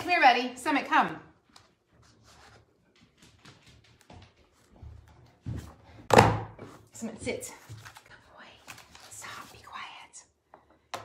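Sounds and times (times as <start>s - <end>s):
paper handling: 7.6s - 9.6s.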